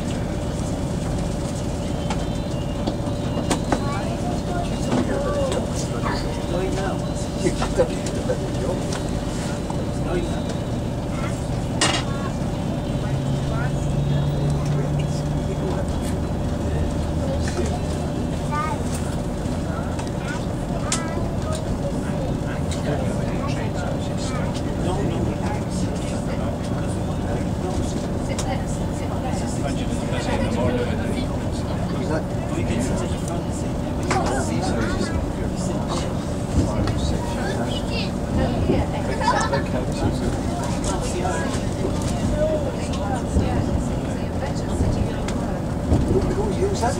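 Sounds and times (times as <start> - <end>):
rumble of running train: 0.0 - 46.9
train diesel engine: 0.0 - 46.9.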